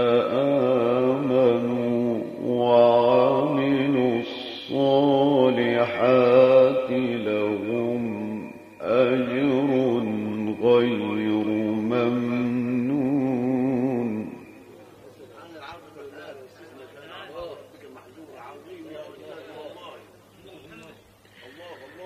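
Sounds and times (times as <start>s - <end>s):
man chanting melodically: 0.0s - 22.0s.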